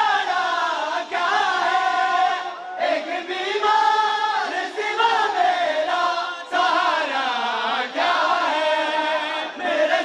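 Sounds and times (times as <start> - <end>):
men chanting a lament: 0.0 - 10.0.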